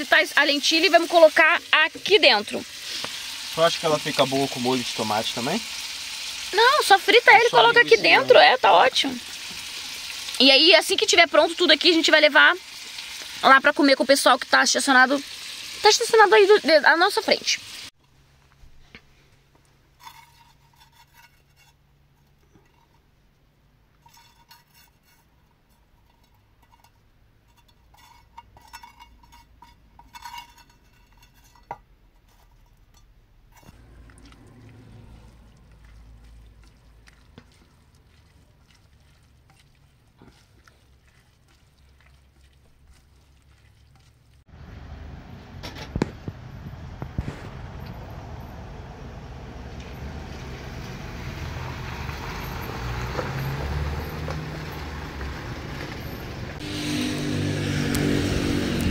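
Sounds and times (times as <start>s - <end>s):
utensils scraping in frying pan: 0.0s - 13.9s, 20.0s - 23.2s, 24.0s - 44.5s, 56.6s - 58.9s
spatula stirring a pot: 20.0s - 23.2s, 24.0s - 44.5s
loud steady rushing noise: 56.6s - 58.9s.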